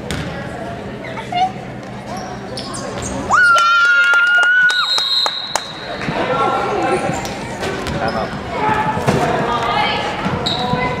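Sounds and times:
spectators' voices echoing: 5.5 - 11.0.

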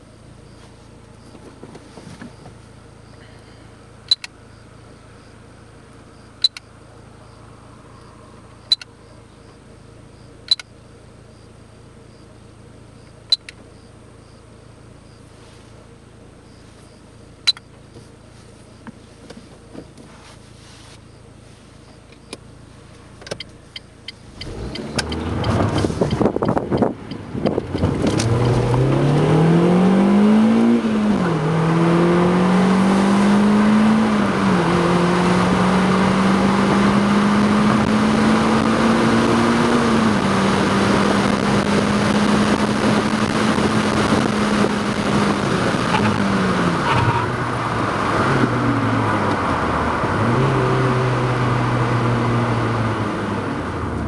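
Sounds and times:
car engine accelerating: 0.0 - 54.0
road and tyre noise: 0.0 - 54.0.

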